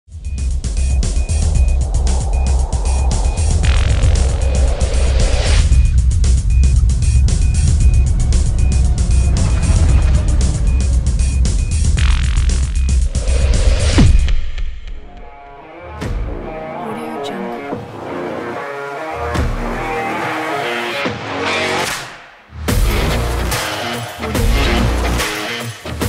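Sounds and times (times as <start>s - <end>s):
electronic music with heavy bass: 0.1s - 14.4s, 15.8s - 21.9s, 22.7s - 26.0s
rising whoosh swells: 0.5s - 15.6s.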